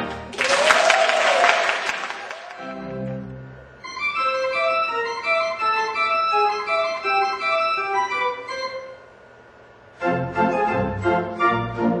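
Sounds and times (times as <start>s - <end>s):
audience applauding: 0.0s - 3.0s
pipe organ chord: 1.8s - 12.0s.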